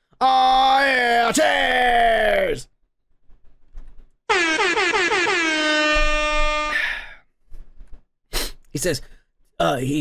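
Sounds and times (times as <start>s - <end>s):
air horn blast: 4.3s - 7.0s.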